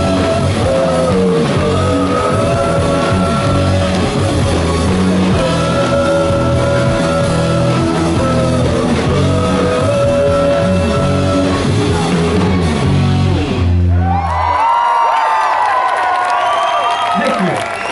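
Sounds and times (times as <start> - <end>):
live rock band playing: 0.0 - 14.2
crowd cheering and whooping: 13.8 - 17.9.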